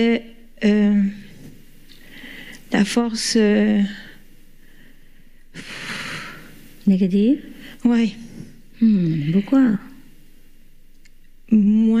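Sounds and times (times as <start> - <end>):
breath close to microphone: 1.2 - 2.7, 4.6 - 6.6.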